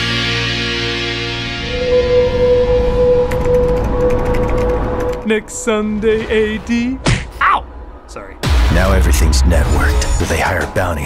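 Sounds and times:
synth drone: 0.0s - 7.0s.

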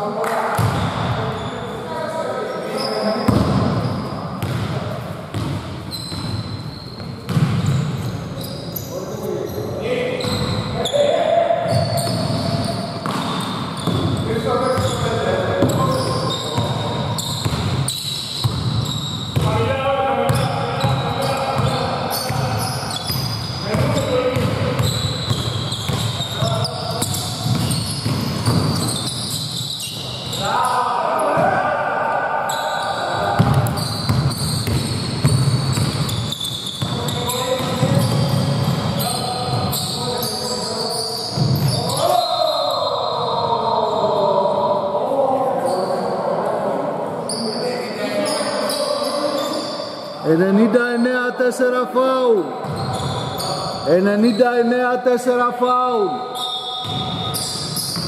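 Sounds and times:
basketball bouncing on hardwood floor: 7.0s - 7.7s, 12.0s - 14.2s, 23.2s - 29.0s, 33.4s - 36.1s.

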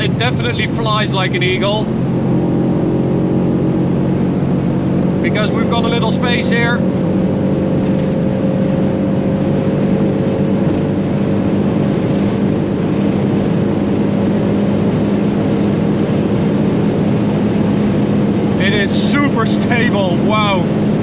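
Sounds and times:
car engine drone: 0.0s - 21.0s
wind and road noise: 0.0s - 21.0s.

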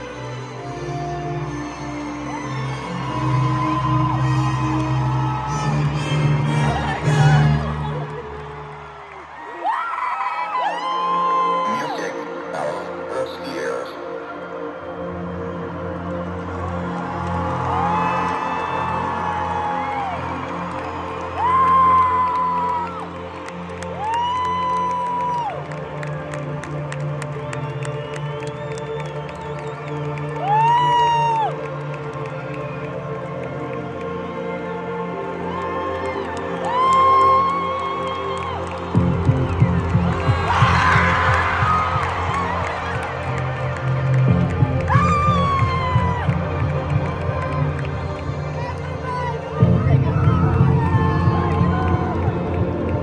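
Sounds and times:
crowd cheering: 2.1s - 13.6s, 16.1s - 53.0s.

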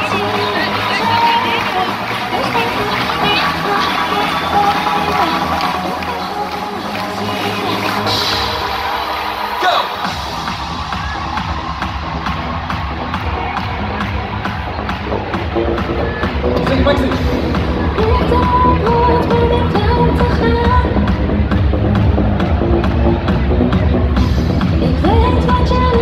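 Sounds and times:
dance-pop music over pa system: 0.0s - 26.0s
deep bass beat: 10.0s - 26.0s.

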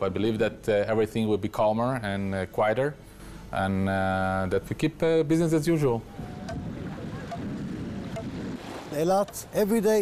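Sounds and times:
wind on microphone: 6.0s - 8.9s
small waves washing on shore: 6.8s - 10.0s.

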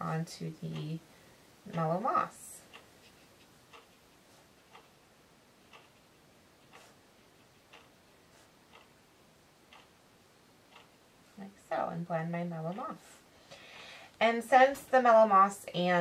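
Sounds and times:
faint regular ticking: 0.0s - 15.1s.

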